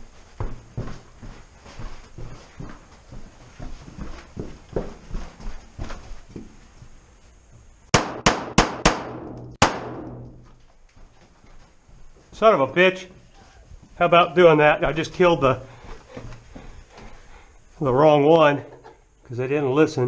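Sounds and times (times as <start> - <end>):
soft footsteps and movement: 0.0 - 7.9, 10.1 - 19.4
pistol shots echoing in cave: 7.9 - 10.4.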